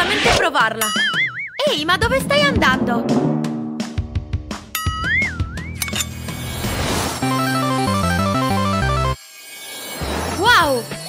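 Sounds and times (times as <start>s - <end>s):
faint rising sweep: 1.8s - 4.7s
rising swell of noise: 1.8s - 4.7s.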